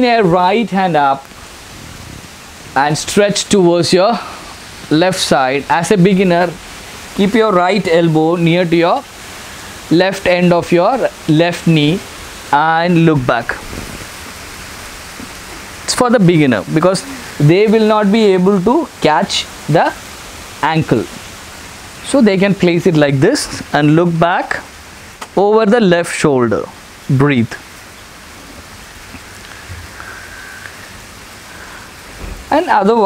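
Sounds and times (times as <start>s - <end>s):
microphone hiss: 0.0s - 33.0s
person speaking word: 15.5s - 20.0s.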